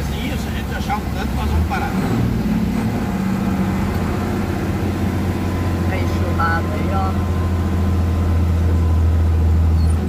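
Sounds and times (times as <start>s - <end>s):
heavy rain hiss: 0.0s - 5.1s
diesel truck engine running: 0.0s - 10.0s
tyres on wet road: 0.0s - 10.0s.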